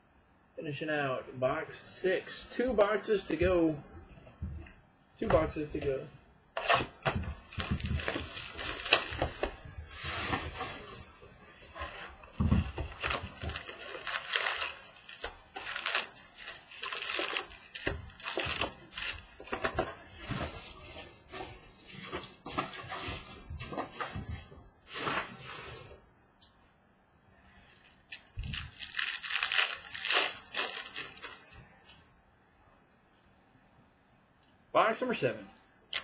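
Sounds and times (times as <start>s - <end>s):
foil packs crinkling and rustling: 6.6s - 25.9s, 28.1s - 31.9s.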